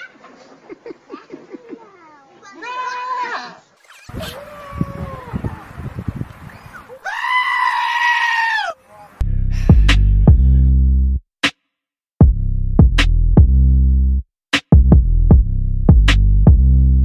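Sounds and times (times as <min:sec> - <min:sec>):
goat screaming: 0:06.8 - 0:08.9
goats bleating: 0:07.0 - 0:08.8
electronic music with heavy bass: 0:09.2 - 0:11.0.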